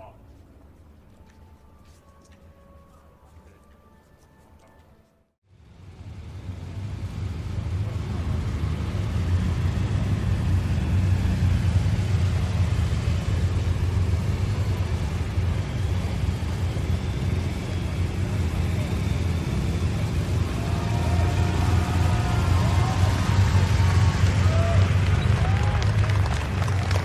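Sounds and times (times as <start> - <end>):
low engine and road rumble: 5.5 - 27.0
crowd murmuring: 17.7 - 27.0.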